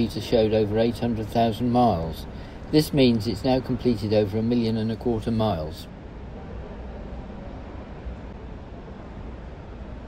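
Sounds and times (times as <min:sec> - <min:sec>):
hall background noise: 0:00.0 - 0:10.0.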